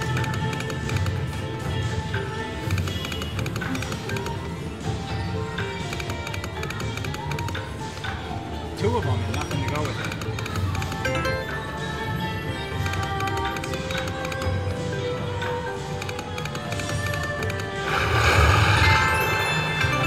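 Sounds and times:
slot machine game music: 0:02.0 - 0:20.0
slot machine reel effects: 0:09.7 - 0:11.8, 0:16.5 - 0:20.0
slot machine win effect: 0:11.0 - 0:11.9, 0:17.8 - 0:20.0.

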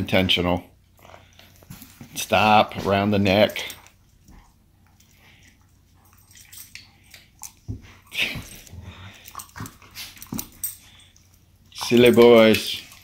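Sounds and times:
dogs scuffling: 0:01.0 - 0:13.0
dogs play-fighting noises: 0:02.8 - 0:13.0.

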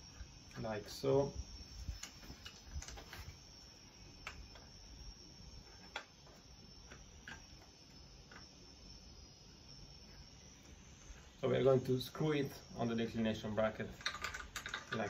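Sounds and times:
faint high whine: 0:00.0 - 0:15.0
metal shaft ticking and clicking: 0:14.0 - 0:15.0.

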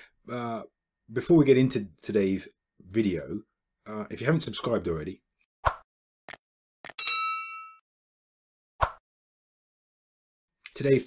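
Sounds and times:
bright bell ding: 0:07.0 - 0:07.8.

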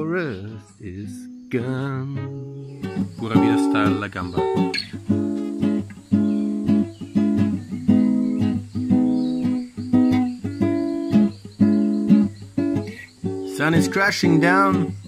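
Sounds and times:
acoustic guitar strummed chords: 0:00.0 - 0:15.0.

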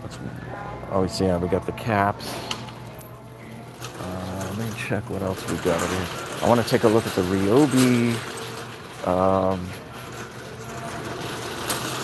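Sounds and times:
cart basket rattling: 0:03.8 - 0:12.0
cart clatter: 0:03.8 - 0:12.0
cart wheels rumbling on concrete: 0:04.0 - 0:12.0.

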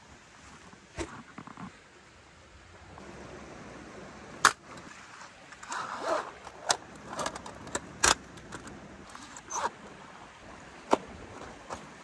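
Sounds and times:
handling rustle: 0:04.6 - 0:10.0.

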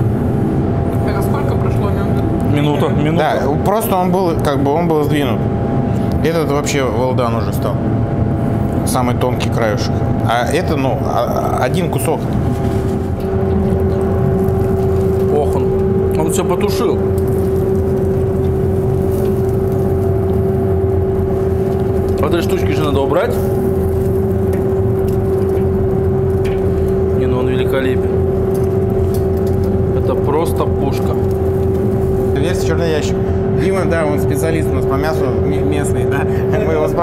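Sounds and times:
mechanical hum with steady tone: 0:00.0 - 0:37.0.

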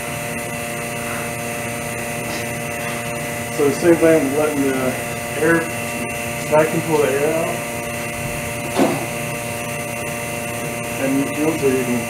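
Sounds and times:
vacuum pump humming: 0:00.0 - 0:12.0.

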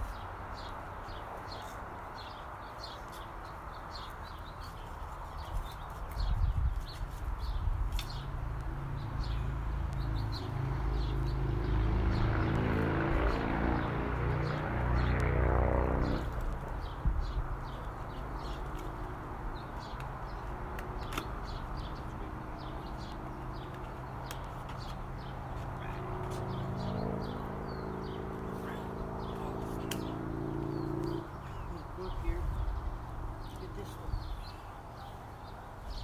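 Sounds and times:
small birds chirping: 0:00.0 - 0:36.0
vehicle engine passing by: 0:08.1 - 0:19.9, 0:20.6 - 0:34.3.

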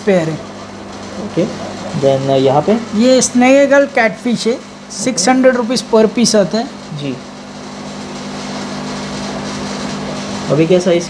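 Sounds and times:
aquarium air pumps humming: 0:00.0 - 0:11.0.

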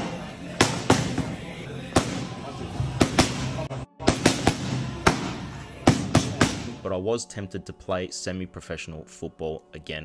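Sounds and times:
boxing gloves slapping mitts: 0:00.0 - 0:02.3, 0:03.0 - 0:06.8.

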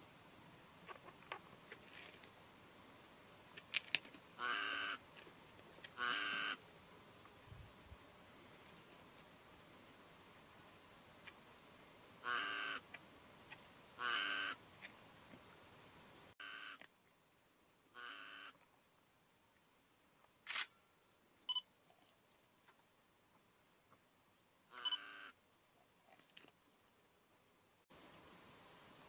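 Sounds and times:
camera shutter bursts: 0:20.5 - 0:20.7
camera shutter clicks: 0:20.5 - 0:20.7.

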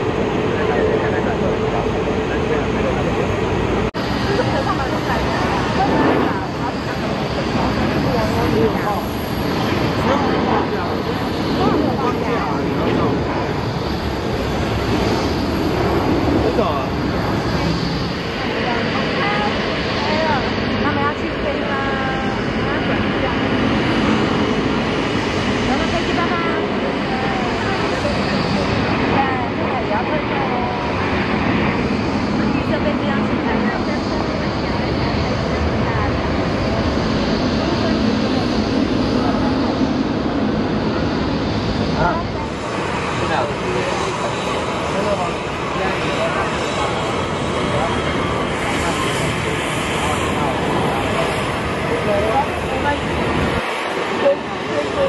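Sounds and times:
jet engines at takeoff: 0:00.0 - 0:55.0
people's voices: 0:00.0 - 0:55.0.

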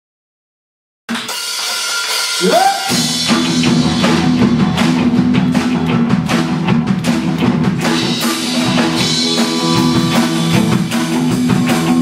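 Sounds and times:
drum cymbals: 0:01.1 - 0:12.0
guitars and keyboard chord: 0:02.9 - 0:12.0.

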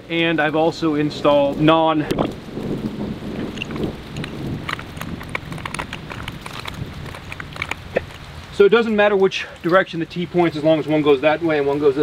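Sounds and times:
crinkly tape handling: 0:03.3 - 0:08.5.

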